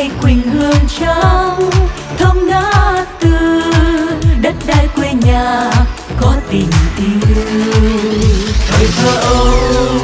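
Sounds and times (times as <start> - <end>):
group singing pop ballad: 0.0 - 10.0.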